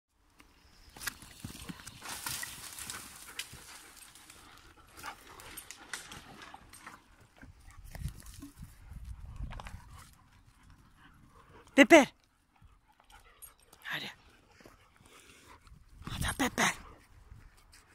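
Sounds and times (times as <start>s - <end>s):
paws rustling on dry twigs: 0.9s - 11.7s.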